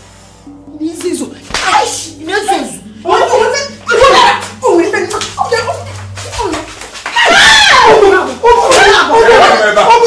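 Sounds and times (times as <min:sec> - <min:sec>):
steady low hum: 0:00.0 - 0:07.1
women crying out: 0:06.4 - 0:09.6.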